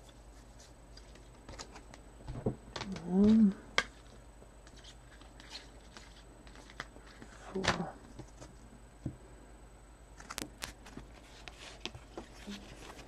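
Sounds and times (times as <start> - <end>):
trading cards flipped by hand: 2.8 - 8.5.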